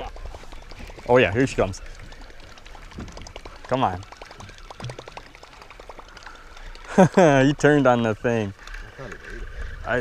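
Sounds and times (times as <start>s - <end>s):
water splashing and trickling: 0.0s - 10.0s
fishing reel clicking: 1.6s - 9.7s.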